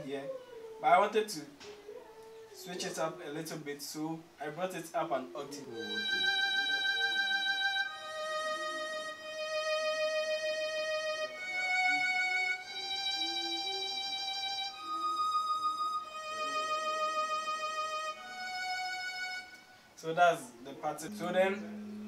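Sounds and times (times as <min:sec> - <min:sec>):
synth violin slow melody: 0:05.6 - 0:20.0, 0:21.0 - 0:22.0.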